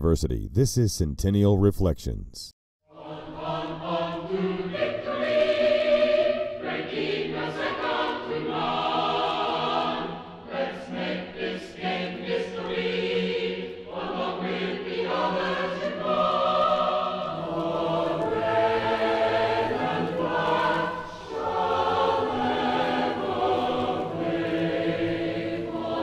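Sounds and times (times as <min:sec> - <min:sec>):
choir singing: 0:02.9 - 0:26.0.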